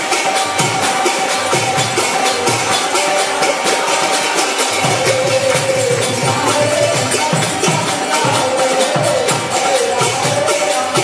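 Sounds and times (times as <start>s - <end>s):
hand cymbals shimmering: 0.0s - 11.0s.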